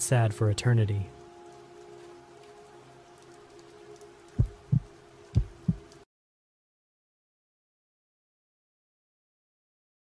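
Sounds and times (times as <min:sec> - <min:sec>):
low drone: 0:00.4 - 0:06.0
heartbeat thumps: 0:04.4 - 0:05.9.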